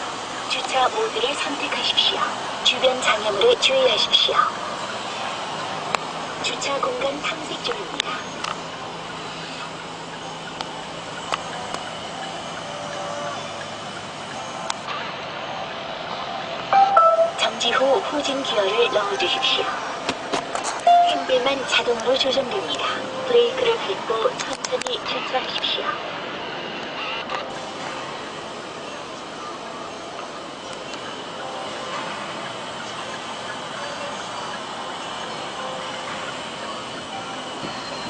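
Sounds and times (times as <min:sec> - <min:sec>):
electronic parking chime: 0:16.7 - 0:17.4, 0:20.8 - 0:21.5.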